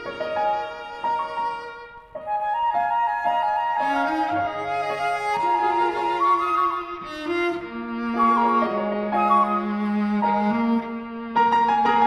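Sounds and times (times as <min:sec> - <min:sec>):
flute playing slow melody: 0:00.0 - 0:10.8.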